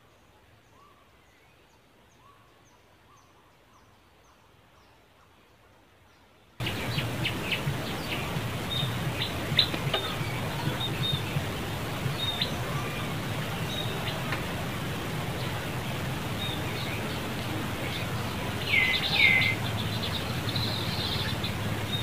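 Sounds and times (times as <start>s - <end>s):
loud steady outdoor hiss: 0.0s - 22.0s
bird chirps: 6.6s - 15.7s, 16.4s - 22.0s.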